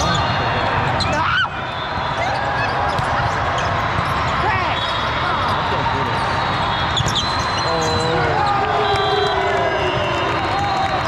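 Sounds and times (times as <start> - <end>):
sneakers squeaking on court floor: 0.0 - 9.1
chatter of many voices: 0.0 - 9.4
balls bouncing: 2.4 - 4.8, 6.8 - 9.2.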